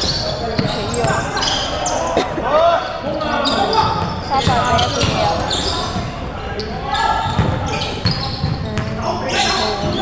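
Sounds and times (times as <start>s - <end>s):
sneakers squeaking on gym floor: 0.0s - 2.1s, 2.8s - 10.0s
basketball bouncing: 7.3s - 9.0s.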